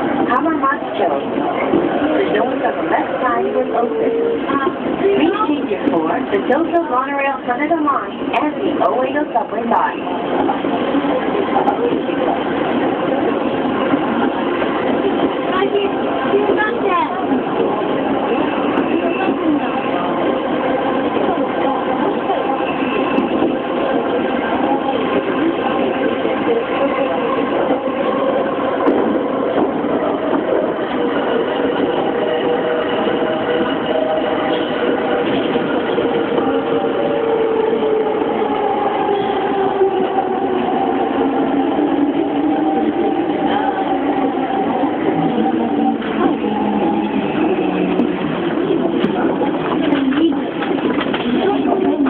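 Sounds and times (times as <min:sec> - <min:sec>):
train motors and wheels humming: 0:00.0 - 0:52.0.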